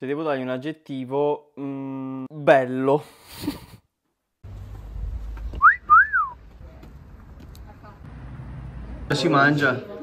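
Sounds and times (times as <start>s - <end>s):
person wolf whistling: 5.6s - 6.4s
low outdoor rumble: 6.3s - 9.4s.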